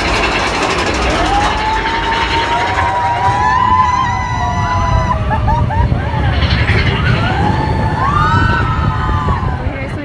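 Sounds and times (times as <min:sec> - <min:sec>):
roller coaster rumbling on track: 0:00.0 - 0:10.0
rushing air: 0:00.0 - 0:10.0
riders screaming: 0:00.8 - 0:09.9.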